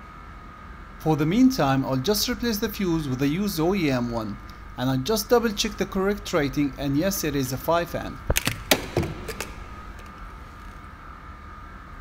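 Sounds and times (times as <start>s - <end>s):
faint steady whine: 0.0s - 12.0s
low steady hum: 0.0s - 12.0s
fuse clicking into fuse box: 8.3s - 10.3s.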